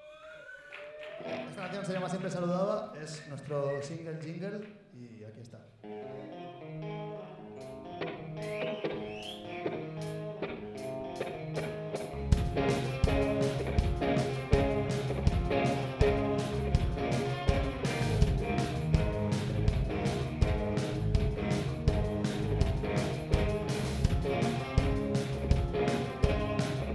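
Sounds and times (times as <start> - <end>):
bass guitar: 5.8 - 26.9
electric guitar picked melody: 5.8 - 26.9
drum kit steady beat: 12.3 - 26.9.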